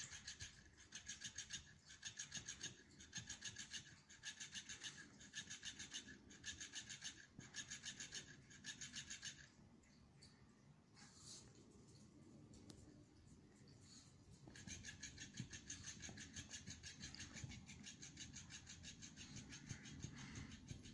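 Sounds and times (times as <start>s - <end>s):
toy fish tail flapping: 0.0s - 9.6s, 14.2s - 20.9s.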